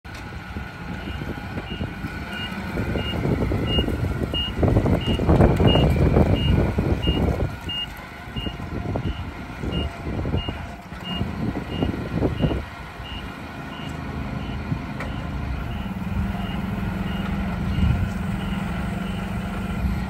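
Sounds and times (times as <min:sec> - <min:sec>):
forklift engine running: 0:00.0 - 0:20.0.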